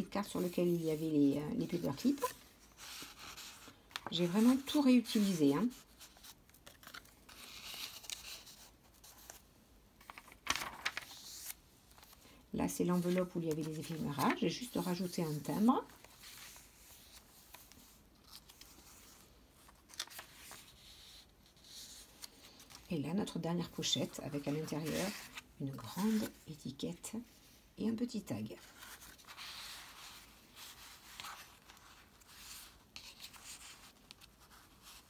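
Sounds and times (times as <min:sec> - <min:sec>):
paper pages rustling: 0:00.2 - 0:26.5, 0:28.6 - 0:35.0
paper rustling and sliding: 0:10.0 - 0:12.2, 0:12.9 - 0:22.9, 0:24.0 - 0:26.4.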